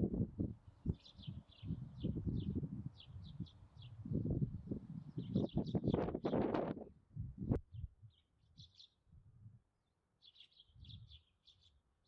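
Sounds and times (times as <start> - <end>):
small birds chirping: 0.8 - 4.0, 5.0 - 6.4, 7.7 - 9.0, 10.2 - 11.8.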